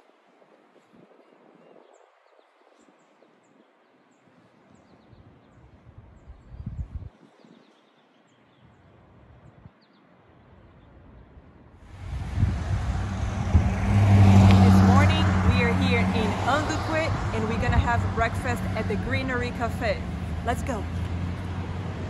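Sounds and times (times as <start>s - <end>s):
wind rumble on microphone: 0.0s - 7.9s, 8.5s - 9.8s, 10.6s - 22.0s
roadside traffic: 11.8s - 22.0s
vehicle engine hum passing: 11.9s - 22.0s.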